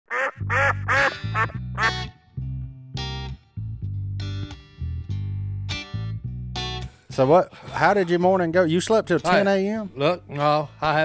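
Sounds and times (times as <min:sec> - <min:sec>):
duck quacks: 0:00.1 - 0:02.1
theme music with bass line: 0:00.3 - 0:11.0.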